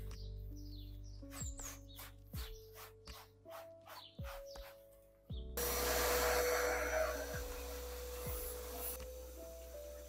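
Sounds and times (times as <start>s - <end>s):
vacuum cleaner running: 5.6s - 10.0s.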